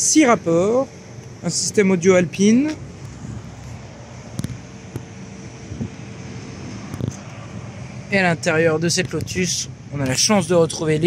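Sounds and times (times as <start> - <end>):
light wind on microphone: 2.7 - 7.9.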